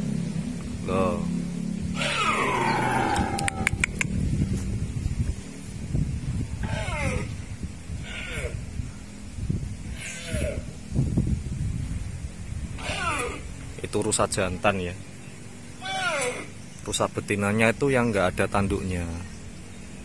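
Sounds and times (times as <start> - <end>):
steady low rumble: 0.0 - 20.0
deer stag calling: 1.9 - 3.9, 6.6 - 8.6, 9.9 - 10.8, 12.8 - 13.6, 15.7 - 16.6.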